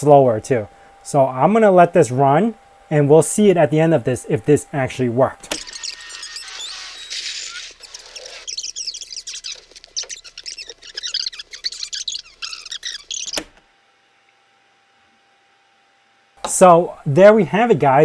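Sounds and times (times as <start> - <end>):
laser etcher chirping and squeaking: 5.5 - 13.6
sharp click: 13.2 - 13.6.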